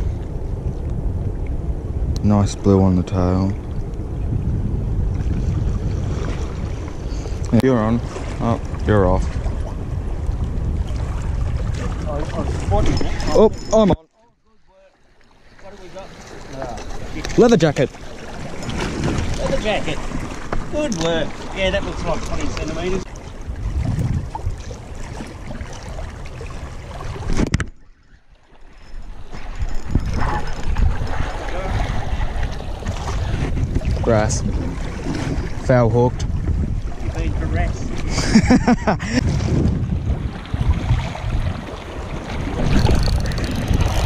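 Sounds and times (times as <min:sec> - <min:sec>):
wind buffeting microphone: 0:00.0 - 0:14.0, 0:15.7 - 0:44.0
sea washing against rocks: 0:15.6 - 0:27.6, 0:29.1 - 0:38.2, 0:39.1 - 0:44.0.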